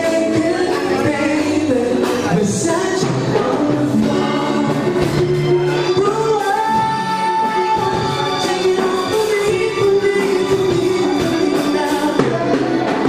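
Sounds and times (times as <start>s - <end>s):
instrumental accompaniment: 0.0s - 13.0s
man singing a ballad: 0.0s - 13.0s.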